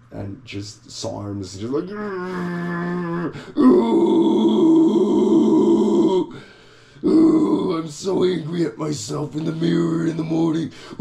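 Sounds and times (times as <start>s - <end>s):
man straining groans: 1.8s - 6.4s, 7.0s - 7.9s.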